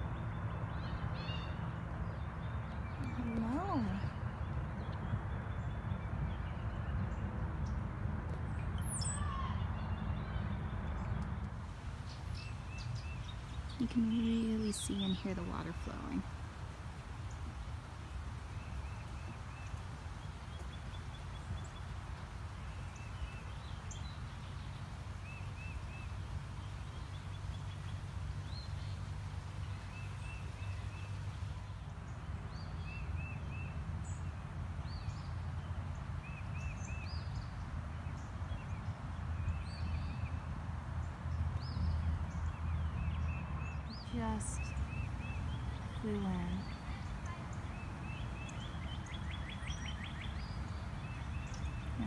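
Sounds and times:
songbirds calling: 0.0s - 52.0s
creek water flowing: 11.5s - 32.8s.

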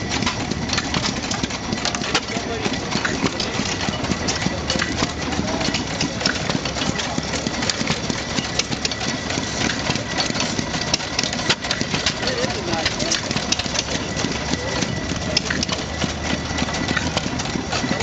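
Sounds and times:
engine clicks: 0.0s - 18.0s
stationary engine running slowly: 0.0s - 18.0s.

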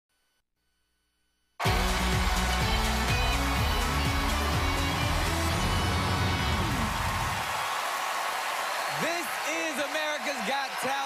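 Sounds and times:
theme music with heavy bass: 1.6s - 7.4s
audience applause: 1.6s - 11.0s.

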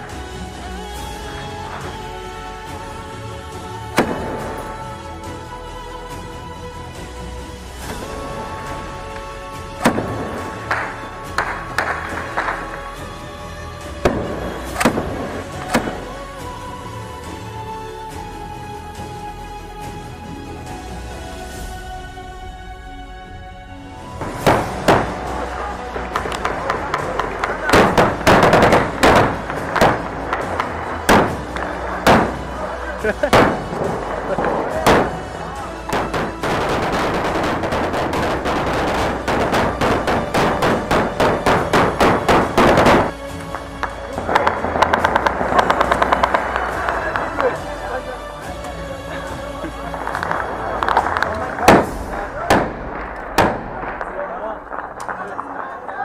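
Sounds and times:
gunshots: 24.2s - 32.6s, 33.3s - 43.3s, 50.1s - 56.0s
loud noisy background: 24.4s - 43.4s.

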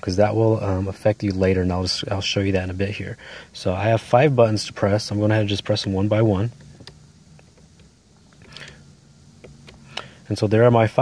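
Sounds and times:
car cabin hum: 0.0s - 11.0s.

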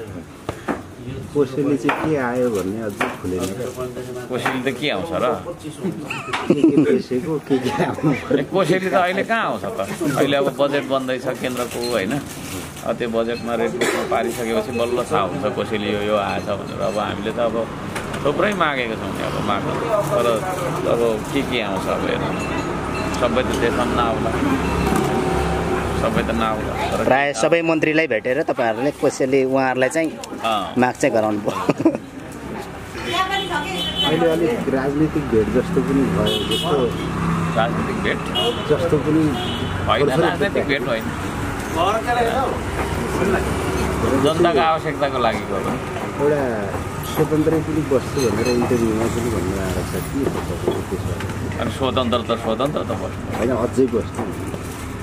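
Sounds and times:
street traffic hum: 0.0s - 55.0s
people talking: 1.0s - 17.7s, 26.0s - 41.1s, 41.7s - 54.3s.

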